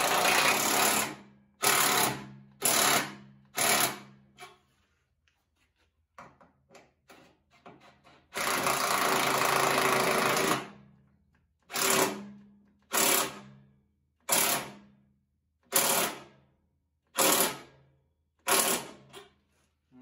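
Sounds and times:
impact driver running and hammering: 0.0s - 4.2s, 8.2s - 10.8s, 11.6s - 13.5s, 14.2s - 14.8s, 15.6s - 16.4s, 17.1s - 17.7s, 18.4s - 19.2s.

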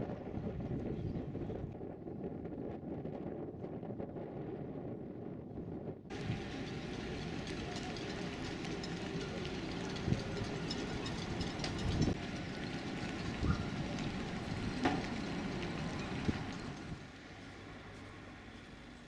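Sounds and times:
knocks and clatter: 6.1s - 17.0s
passing traffic rumble: 6.1s - 19.0s.

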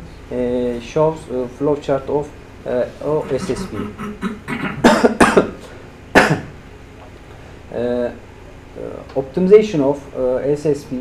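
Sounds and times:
man coughing: 3.2s - 5.6s, 6.2s - 6.5s.

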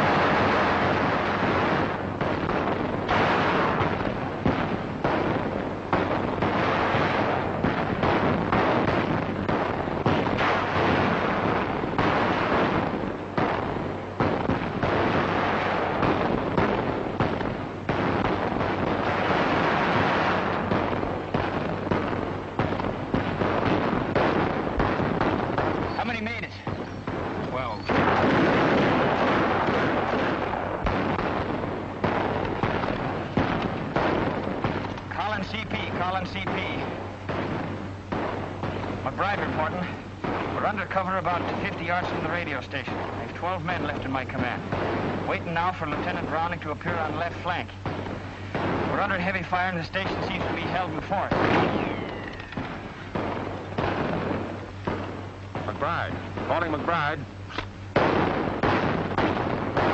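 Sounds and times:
explosions: 0.0s - 59.9s
rifle and machine-gun fire: 0.0s - 59.9s.

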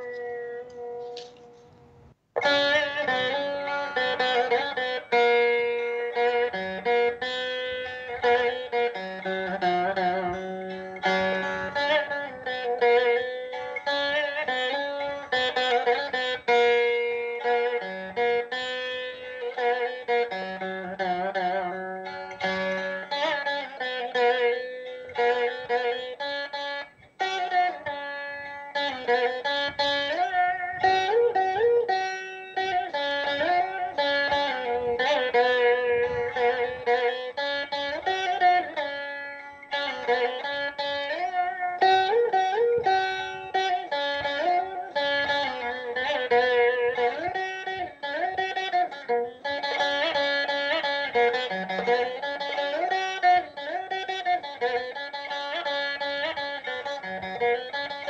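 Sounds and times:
plucked veena: 0.0s - 58.0s.

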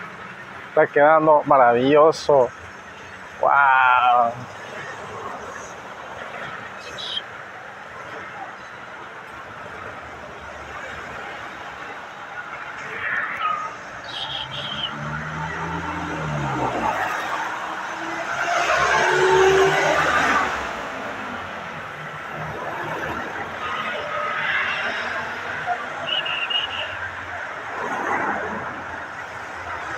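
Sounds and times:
vehicle approaching: 12.6s - 24.1s.

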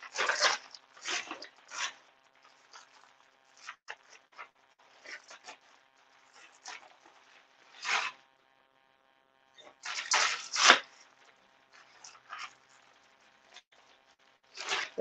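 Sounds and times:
plastic bags crinkling and rustling: 0.0s - 8.2s, 9.6s - 13.7s, 14.5s - 15.0s.

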